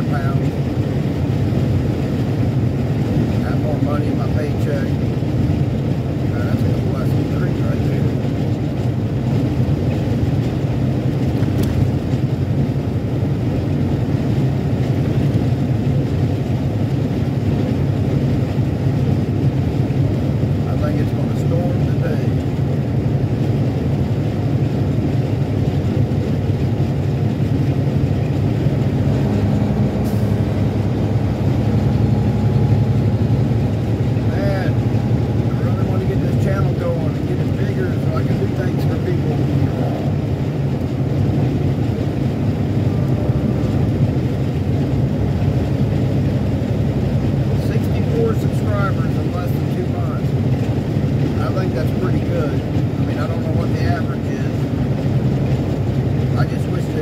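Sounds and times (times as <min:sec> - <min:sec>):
truck diesel engine running: 0:00.0 - 0:57.0
tyre and road noise: 0:00.0 - 0:57.0.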